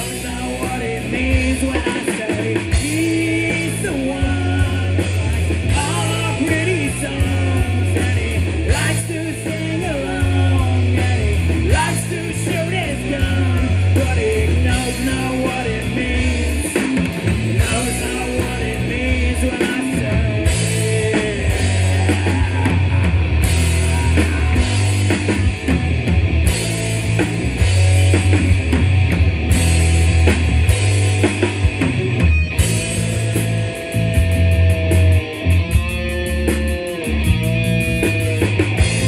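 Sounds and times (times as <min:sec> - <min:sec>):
live rock band playing: 0:00.0 - 0:39.0.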